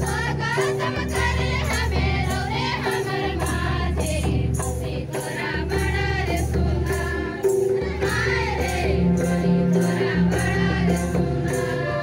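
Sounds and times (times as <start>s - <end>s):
group of voices singing: 0.0s - 12.0s
music with steady drum beat: 0.0s - 12.0s.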